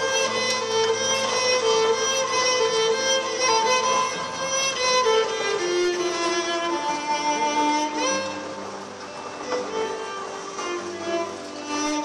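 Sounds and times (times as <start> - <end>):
bowed cello: 0.0 - 12.0.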